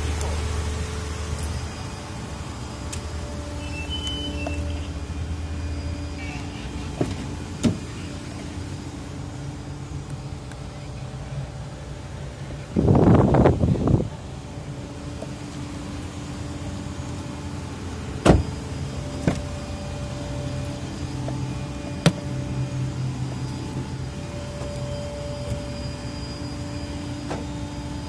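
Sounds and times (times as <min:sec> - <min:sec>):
car engine idling: 0:00.0 - 0:28.0.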